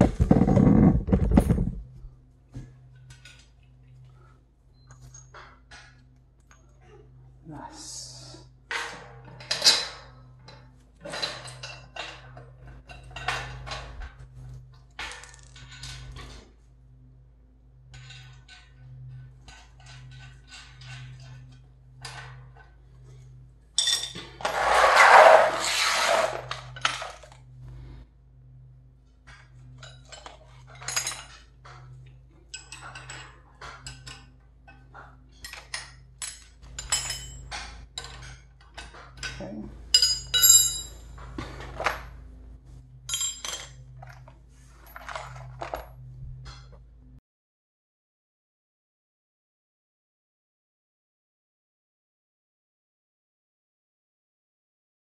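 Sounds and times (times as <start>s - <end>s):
bolts and tools clinking on metal: 32.5s - 41.1s, 43.0s - 45.8s.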